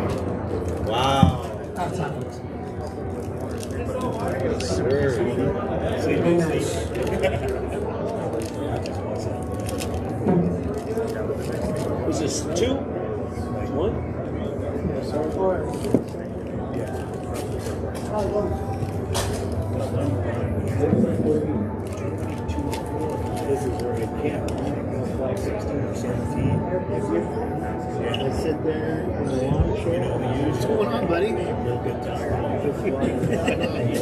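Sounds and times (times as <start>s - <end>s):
background chatter: 0.0s - 34.0s
indistinct talking: 0.0s - 34.0s.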